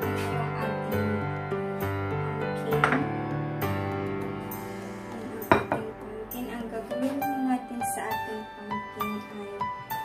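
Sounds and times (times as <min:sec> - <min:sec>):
soft background music: 0:00.0 - 0:10.0
ceramic bowls and plate clinking: 0:02.8 - 0:03.0, 0:05.5 - 0:05.9
sharp knock on counter: 0:05.5 - 0:05.8.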